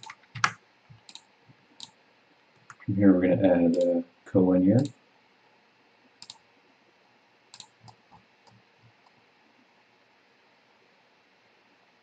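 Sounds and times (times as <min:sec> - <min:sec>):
computer mouse clicks: 0:00.0 - 0:02.0, 0:06.2 - 0:06.4, 0:07.5 - 0:09.2.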